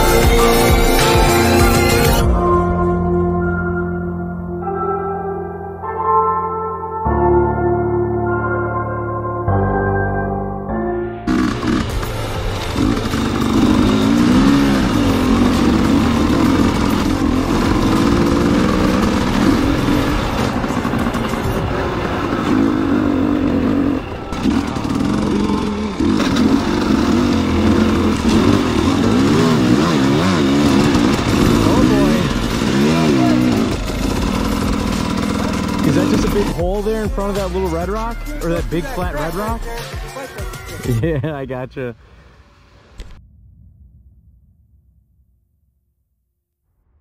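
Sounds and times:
dirt bike engine revving: 11.3s - 39.6s.

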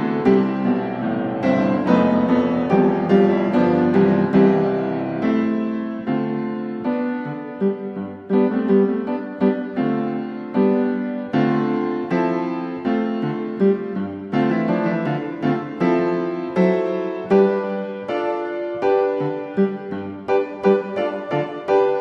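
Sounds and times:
slow solo piano melody: 0.0s - 22.0s.

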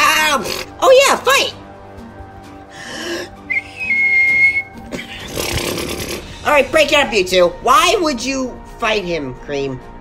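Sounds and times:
background music: 0.0s - 10.0s
steady high whistle: 3.4s - 4.8s.

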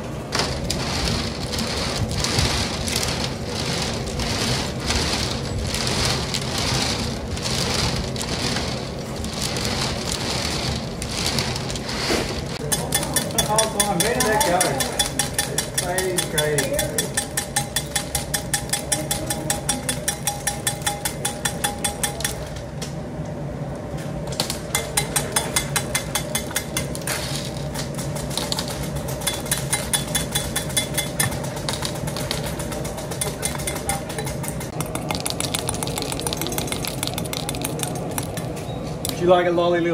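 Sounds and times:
steady hum: 0.0s - 39.9s.

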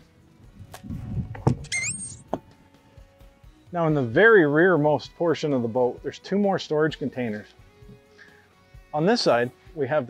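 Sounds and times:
low rumbles: 0.5s - 3.0s
short rising squeak: 1.5s - 2.4s.

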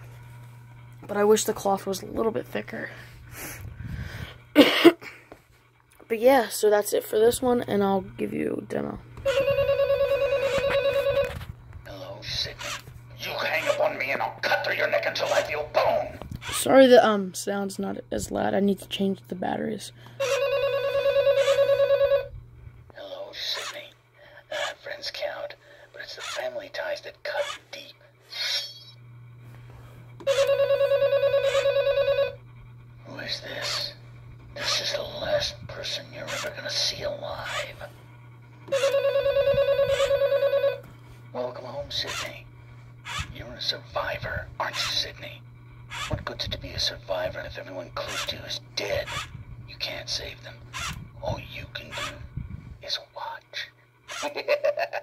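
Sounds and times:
steady low hum: 0.0s - 55.0s
electronic telephone ring: 9.2s - 11.4s, 20.2s - 22.3s, 30.2s - 32.4s, 38.7s - 40.9s.

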